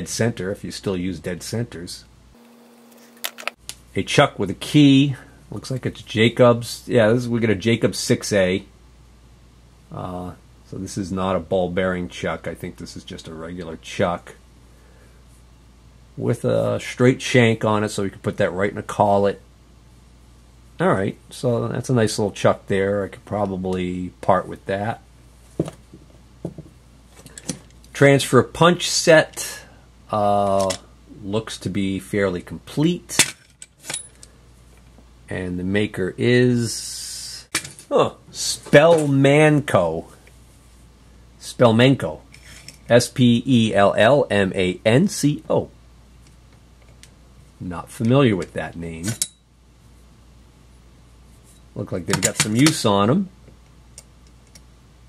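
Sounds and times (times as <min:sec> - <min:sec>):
tool set down on wood: 0:25.6 - 0:26.7.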